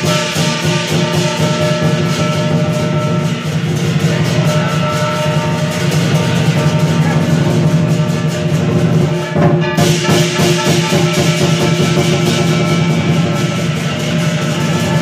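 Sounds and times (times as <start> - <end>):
big drum fast strokes: 0.0 - 15.0
crashing hand cymbals: 0.0 - 15.0
ringing gong: 0.0 - 15.0.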